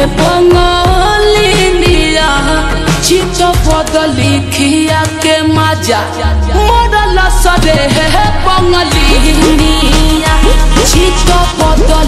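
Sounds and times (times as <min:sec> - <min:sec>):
slowed song with reverb: 0:00.0 - 0:12.0.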